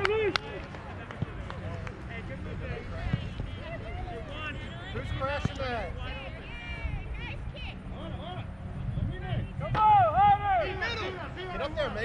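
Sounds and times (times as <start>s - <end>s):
voices shouting: 9.2s - 12.0s.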